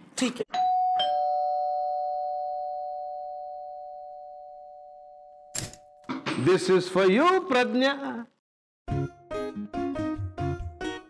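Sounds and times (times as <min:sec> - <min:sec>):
two-note doorbell chime: 0:00.6 - 0:06.1.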